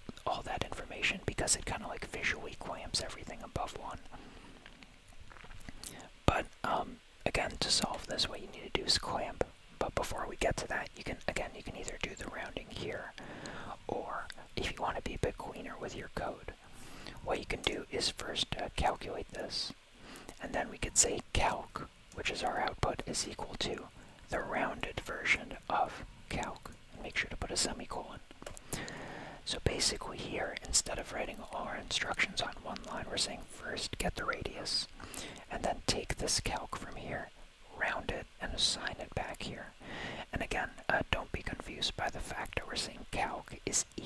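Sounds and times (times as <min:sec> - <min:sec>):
person whispering: 0:00.0 - 0:04.2, 0:05.3 - 0:44.0.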